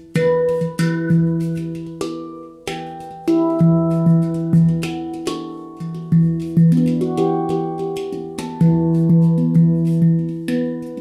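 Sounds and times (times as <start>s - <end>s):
handpan notes ringing: 0.0s - 11.0s
light percussive taps: 0.0s - 11.0s.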